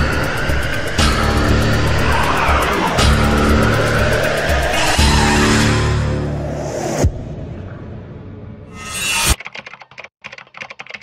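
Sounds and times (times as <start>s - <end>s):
trailer music: 0.0s - 9.4s
computer keyboard keystrokes: 9.4s - 11.0s.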